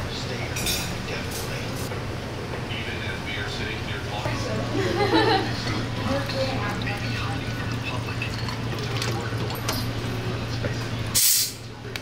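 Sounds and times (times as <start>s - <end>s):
liquid pouring over ice: 6.2s - 10.3s.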